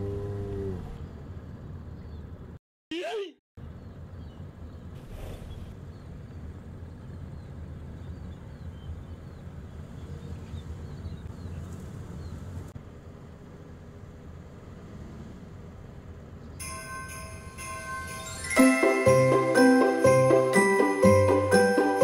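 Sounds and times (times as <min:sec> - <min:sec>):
small birds chirping: 0:00.8 - 0:02.6, 0:03.6 - 0:12.8
low outdoor rumble: 0:03.6 - 0:16.6.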